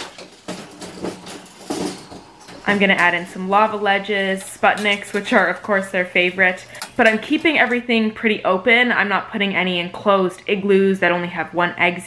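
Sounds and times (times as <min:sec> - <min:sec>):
metal cage rattling: 0:00.0 - 0:07.8.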